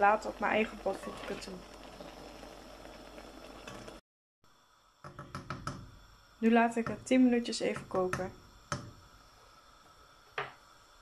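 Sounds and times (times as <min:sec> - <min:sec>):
mushrooms sizzling in a pot: 0:00.0 - 0:11.0
wooden spatula scraping: 0:00.7 - 0:02.2.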